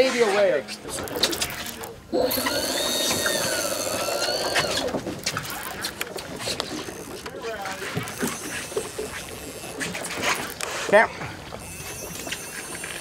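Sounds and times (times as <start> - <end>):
fishing reel whirring: 0.8 - 13.0.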